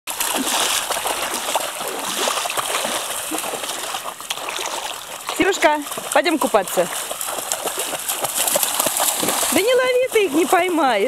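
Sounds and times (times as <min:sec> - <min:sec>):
dog splashing through water: 0:00.1 - 0:11.0.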